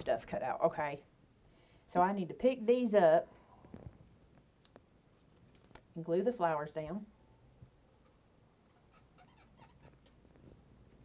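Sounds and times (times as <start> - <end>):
glue bottle squelchy squeaks: 8.0 - 10.1.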